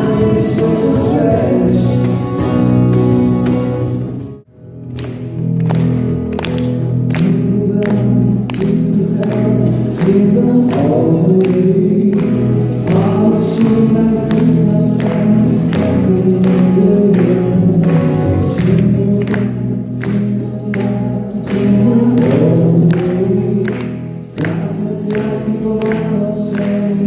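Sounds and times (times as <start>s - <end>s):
men singing: 0.0s - 2.2s, 7.2s - 27.0s
hand percussion beat: 0.0s - 4.2s, 4.8s - 27.0s
acoustic guitar: 0.0s - 27.0s
electric bass: 0.0s - 27.0s.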